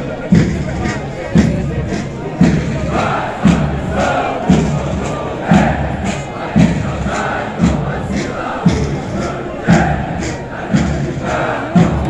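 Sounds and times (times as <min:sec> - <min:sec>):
group chanting in unison: 0:02.3 - 0:12.0.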